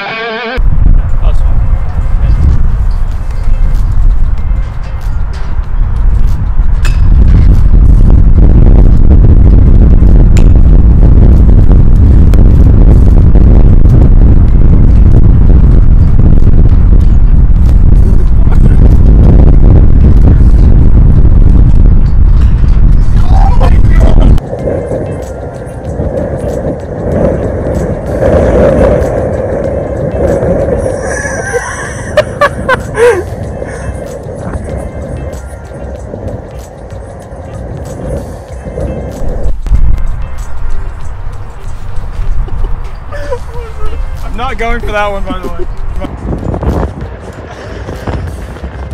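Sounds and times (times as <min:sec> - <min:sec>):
background music: 0:00.0 - 0:10.3, 0:14.2 - 0:48.9
wind buffeting microphone: 0:00.6 - 0:48.9.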